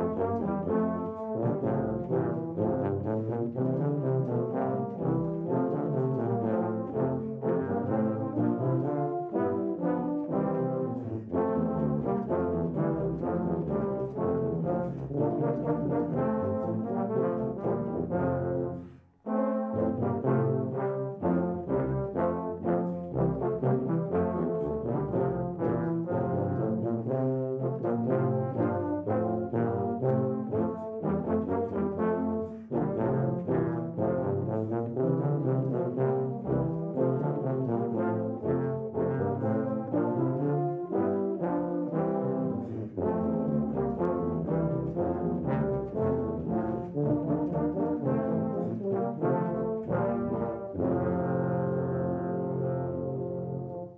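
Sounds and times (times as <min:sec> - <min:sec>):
low brass ensemble playing: 0:00.0 - 0:53.9.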